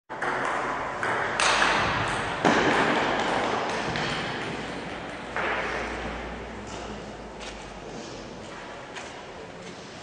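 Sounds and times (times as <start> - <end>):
table tennis ball hits and bounces: 0.1 - 7.6.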